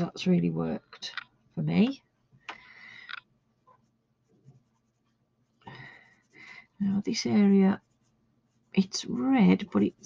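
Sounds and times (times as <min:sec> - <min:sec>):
sponge applicator rubbing on paper: 0:03.6 - 0:10.0.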